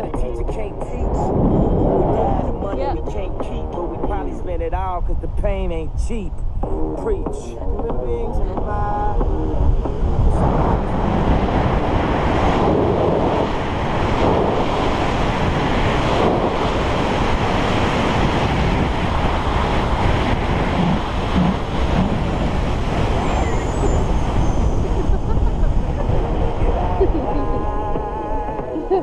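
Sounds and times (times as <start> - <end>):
wind rushing over microphone: 0.0 - 29.0.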